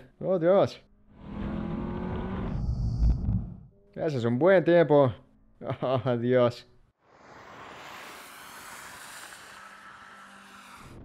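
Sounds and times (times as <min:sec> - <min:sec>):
sports car engine accelerating: 0:01.0 - 0:03.6.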